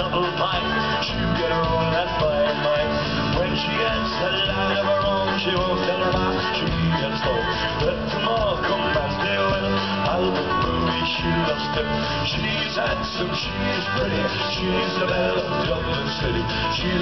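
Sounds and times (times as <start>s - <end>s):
rock band playing live: 0.0s - 17.0s.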